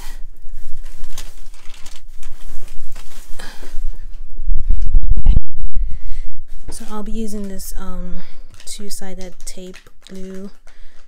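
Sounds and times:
plastic bags crinkling: 0.0s - 5.0s, 6.5s - 11.0s.

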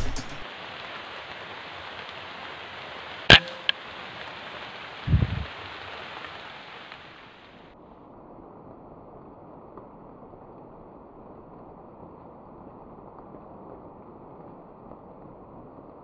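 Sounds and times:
steady hiss: 0.0s - 7.8s
air rifle shot crack: 3.3s - 3.8s.

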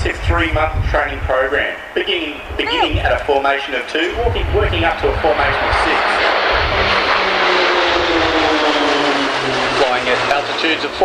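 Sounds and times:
turboprop aircraft flying overhead: 0.0s - 11.0s.

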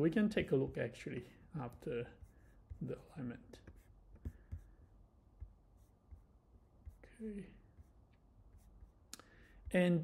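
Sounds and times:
man speaking: 0.0s - 2.2s, 2.8s - 3.7s, 9.6s - 10.0s.

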